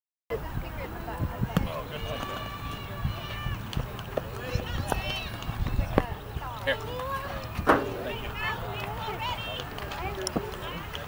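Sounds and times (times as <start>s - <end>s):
people and children chattering: 0.3s - 11.0s.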